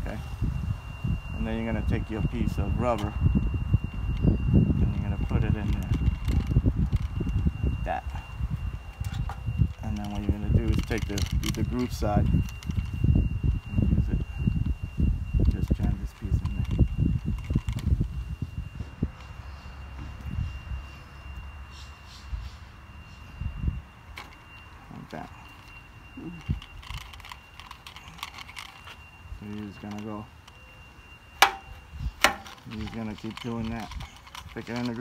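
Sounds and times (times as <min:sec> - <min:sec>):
faint high-pitched tone: 0:00.0 - 0:35.0
knocking handling sounds: 0:31.4 - 0:33.0.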